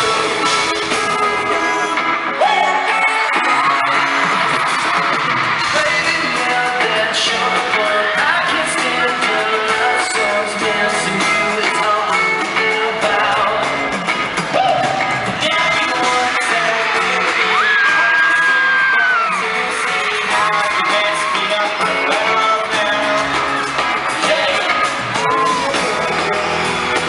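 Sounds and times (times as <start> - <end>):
crowd yelling along: 0.0 - 27.0
pop song over sound system: 0.0 - 27.0
group singing: 5.5 - 13.9, 14.6 - 27.0.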